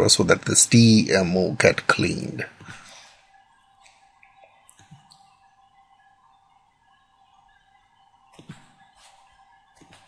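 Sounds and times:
faint steady tone and hiss: 0.0s - 10.0s.

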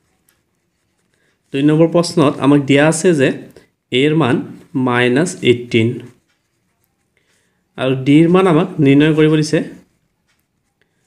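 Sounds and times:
pen scratching on paper: 0.0s - 3.4s, 4.4s - 11.0s
person speaking: 0.0s - 10.7s.

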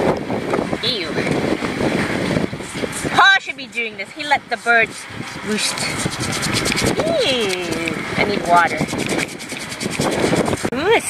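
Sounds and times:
toothbrush scrubbing a deck: 2.6s - 10.7s.

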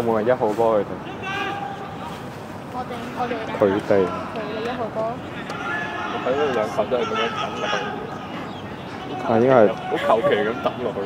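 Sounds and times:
faint outdoor background noise: 0.0s - 11.0s
man speaking: 3.4s - 4.4s, 5.4s - 8.1s.

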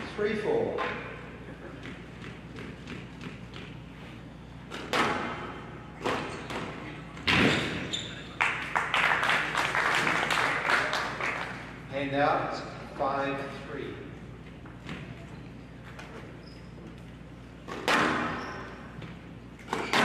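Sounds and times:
squash ball hitting rackets and walls: 0.6s - 4.0s, 4.6s - 7.9s, 14.6s - 15.4s, 17.6s - 20.0s.

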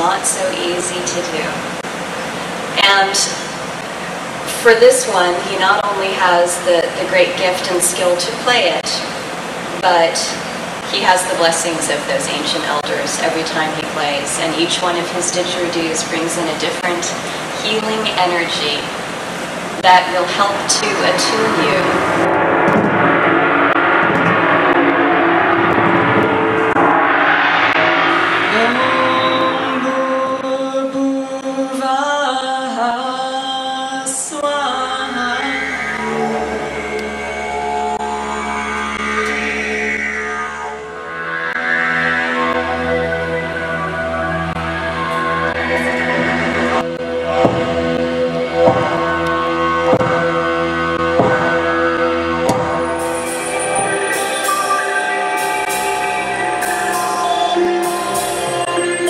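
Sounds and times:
didgeridoo drone: 0.0s - 31.5s, 34.4s - 59.0s
gong ringing: 18.9s - 30.9s, 35.4s - 59.0s
regular beat: 44.5s - 59.0s.

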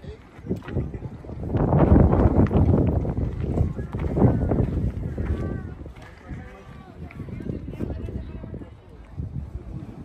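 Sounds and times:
wind blowing on microphone: 0.0s - 10.0s.

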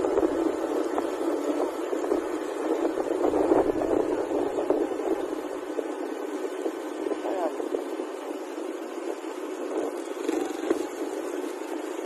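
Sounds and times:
wind rushing on microphone: 0.0s - 12.0s.

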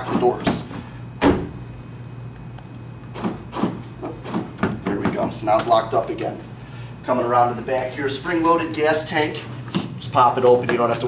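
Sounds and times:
power door locks knocking: 0.1s - 1.6s, 3.1s - 5.4s.

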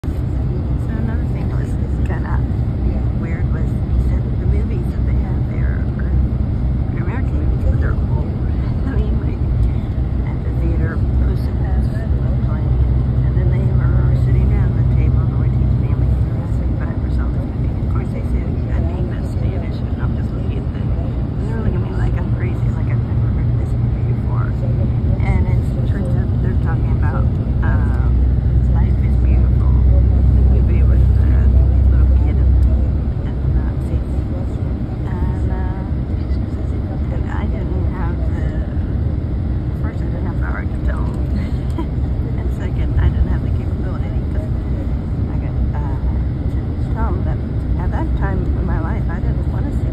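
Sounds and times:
indistinct voices: 0.0s - 49.9s.

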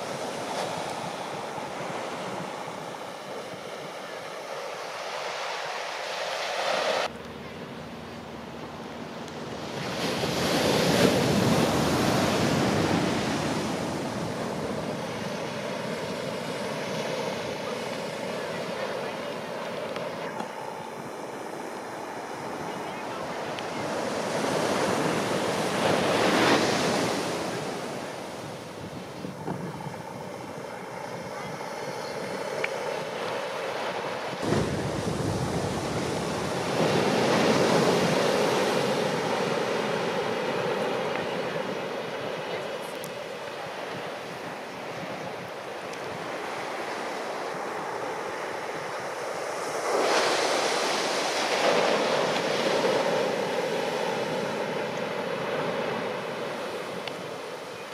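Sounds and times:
ocean waves crashing on shore: 0.0s - 57.9s.

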